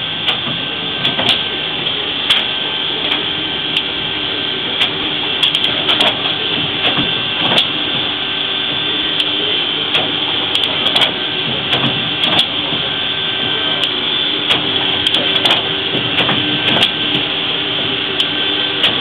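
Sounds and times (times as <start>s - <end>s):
paper cutter machine hum: 0.0s - 19.0s
sharp clicks and knocks: 0.2s - 3.9s, 4.8s - 8.1s, 8.7s - 19.0s.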